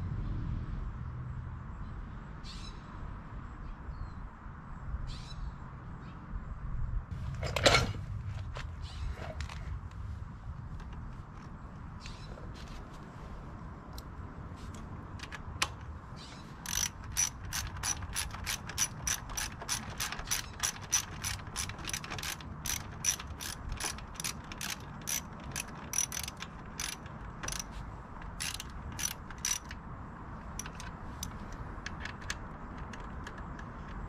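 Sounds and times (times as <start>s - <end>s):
ratchet wrench clicking: 16.6s - 29.8s, 30.4s - 34.0s.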